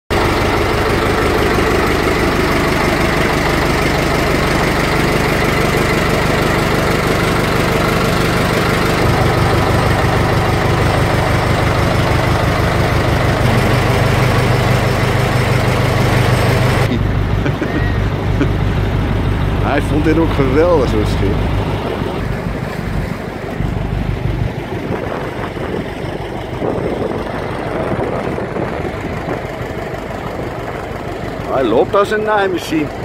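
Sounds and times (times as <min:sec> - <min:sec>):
boat engine droning: 0:00.1 - 0:33.0.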